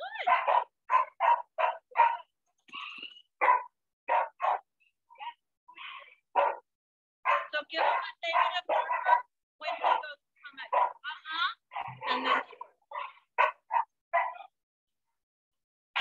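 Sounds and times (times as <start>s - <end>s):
dog barking excitedly: 0.2s - 2.4s, 3.4s - 5.4s, 6.4s - 11.0s, 11.6s - 14.5s.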